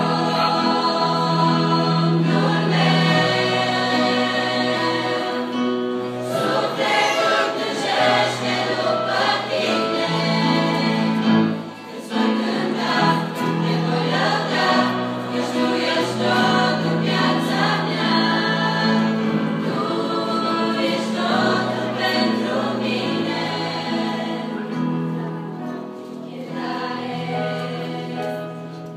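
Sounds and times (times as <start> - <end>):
girls' choir singing: 0.0 - 28.9.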